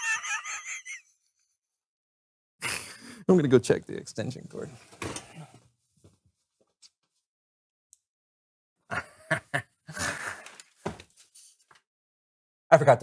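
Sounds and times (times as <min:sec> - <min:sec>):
man laughing: 0:00.0 - 0:01.1, 0:08.9 - 0:10.5.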